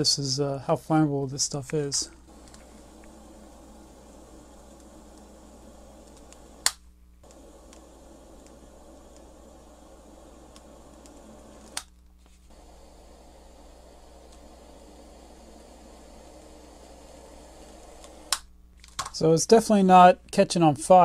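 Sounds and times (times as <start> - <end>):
gas torch hissing: 1.4 - 18.5
torch click: 1.7 - 19.2.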